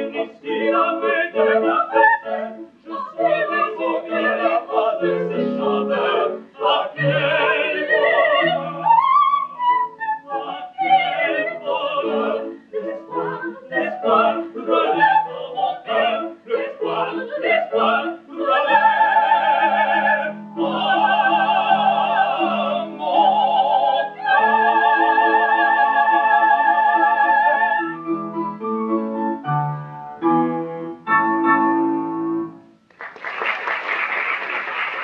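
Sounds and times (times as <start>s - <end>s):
operatic voices singing: 0.0s - 28.0s
piano accompaniment: 0.0s - 32.9s.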